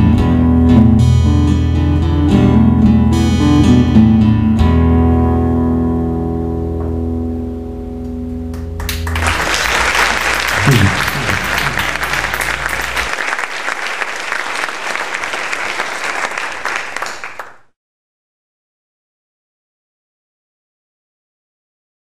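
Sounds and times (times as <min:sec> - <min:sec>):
audience applauding: 0:08.6 - 0:17.7.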